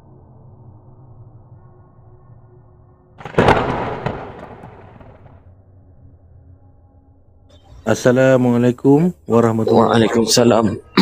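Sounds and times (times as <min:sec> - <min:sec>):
thunderclap-like boom: 0:03.2 - 0:05.4.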